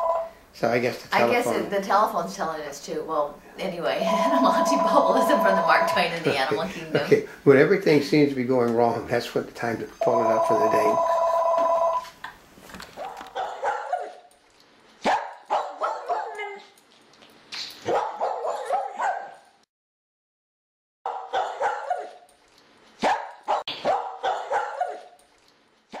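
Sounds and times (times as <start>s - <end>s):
dog barking and yipping: 12.9s - 14.3s, 15.0s - 16.8s, 17.8s - 19.5s, 21.1s - 22.3s, 23.0s - 25.2s.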